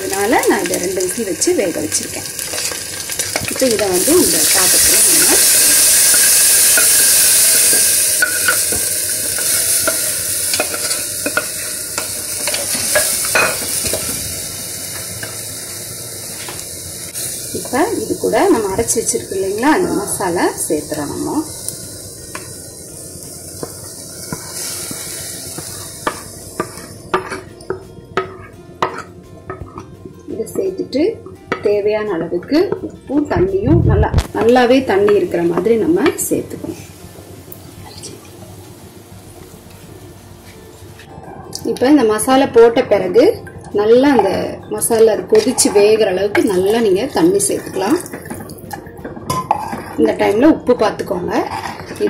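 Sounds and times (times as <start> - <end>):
water pouring and splashing: 46.6 - 48.9.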